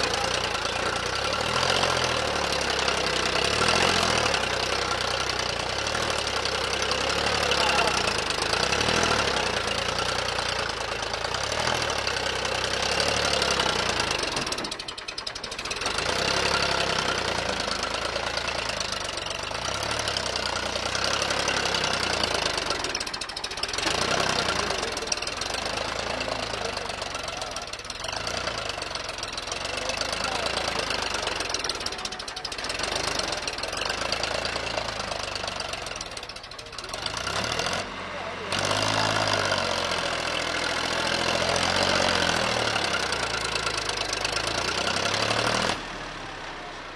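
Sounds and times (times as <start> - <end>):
tractor diesel engine under heavy load: 0.0 - 46.9.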